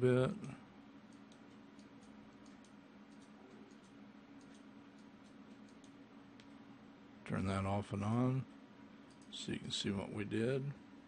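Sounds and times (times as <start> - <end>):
low room hum: 0.0 - 11.0
computer mouse clicks: 1.1 - 6.6, 9.1 - 9.3.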